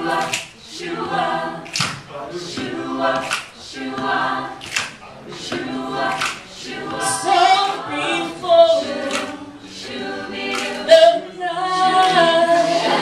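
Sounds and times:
a cappella group singing: 0.0s - 13.0s.

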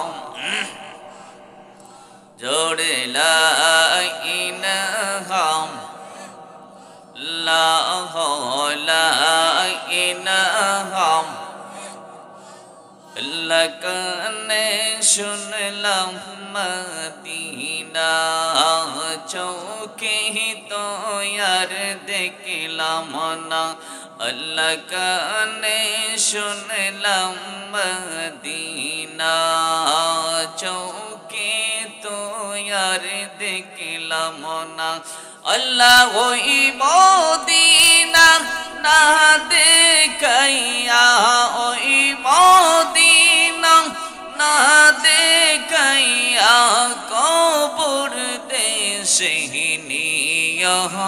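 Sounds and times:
man chanting into a microphone: 0.0s - 51.0s.

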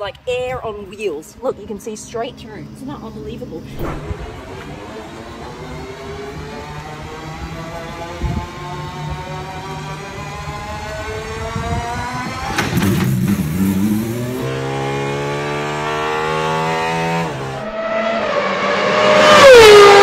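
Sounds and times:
sports car engine revving: 2.6s - 20.0s.

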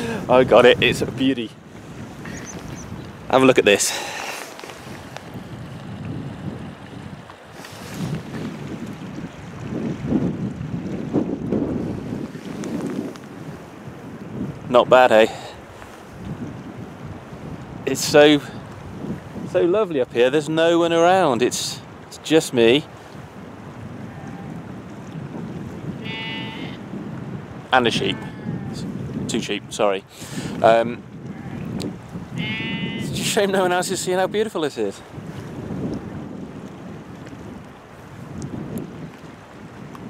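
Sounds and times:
wind buffeting microphone: 0.0s - 40.0s
sheep bleating: 24.0s - 24.6s, 26.0s - 26.8s, 27.9s - 28.8s, 31.3s - 31.7s, 32.3s - 33.2s.

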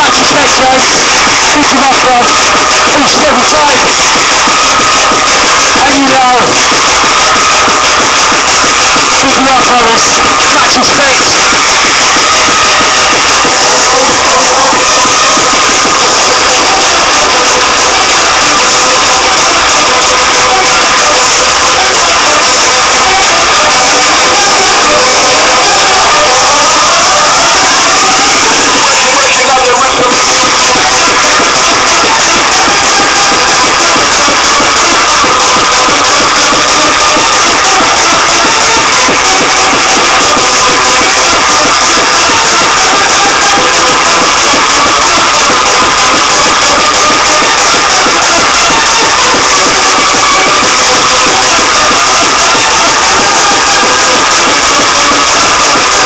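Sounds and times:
hardcore dance music: 0.0s - 56.0s.

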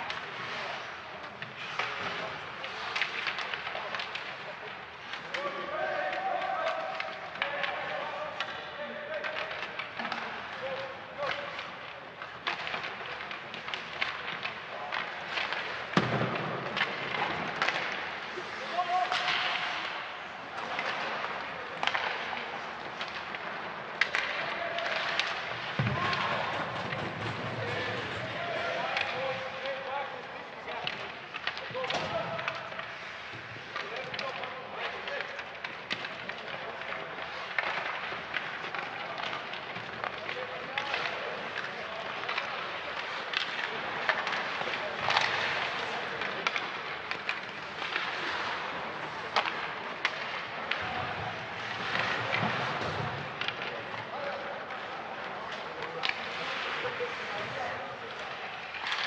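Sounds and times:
skates scraping on ice: 0.0s - 59.0s
sticks and puck clacking: 0.0s - 59.0s.

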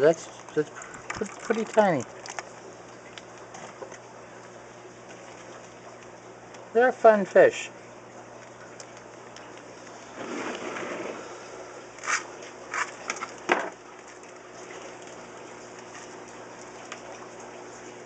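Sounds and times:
steady low hum: 0.0s - 18.0s
water splashing and pouring: 0.1s - 2.6s.

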